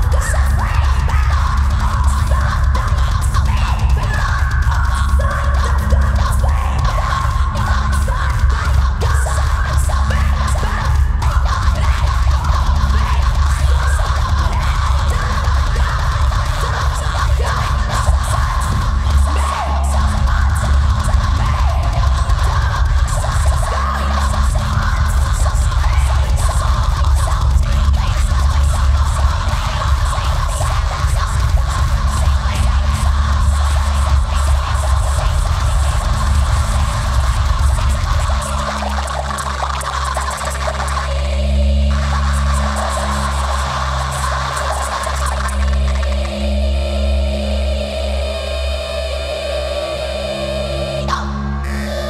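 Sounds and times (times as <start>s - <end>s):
scattered clicks: 0.0s - 47.3s
crackling scratchy noise: 0.0s - 52.0s
deep bass: 0.0s - 52.0s
live electronic music: 0.0s - 52.0s
steady held drone: 0.0s - 52.0s.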